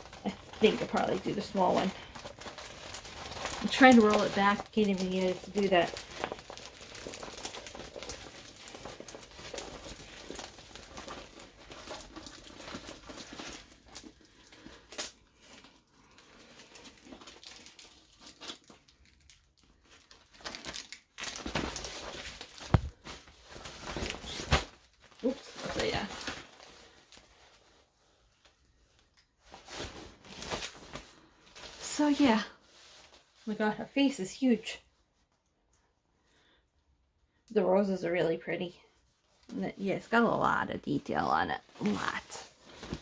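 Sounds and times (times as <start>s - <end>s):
plastic film crinkling: 0.0s - 33.8s, 41.6s - 43.0s.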